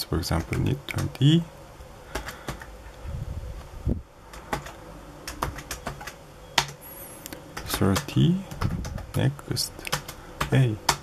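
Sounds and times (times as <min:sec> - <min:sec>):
computer keyboard keys clicking: 0:00.3 - 0:01.2, 0:02.1 - 0:02.7, 0:04.3 - 0:11.0.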